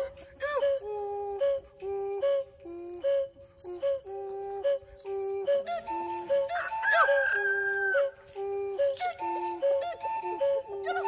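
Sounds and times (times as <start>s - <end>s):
background music: 5.0s - 11.0s
rooster crowing: 6.6s - 8.1s.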